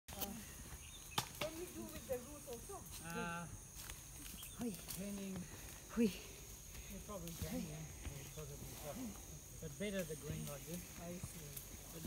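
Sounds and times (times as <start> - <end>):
high insect drone: 0.1 - 12.0.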